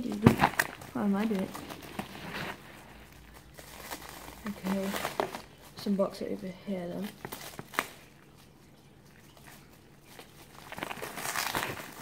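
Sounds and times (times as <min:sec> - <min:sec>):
plastic wrap crinkling: 0:00.0 - 0:12.0.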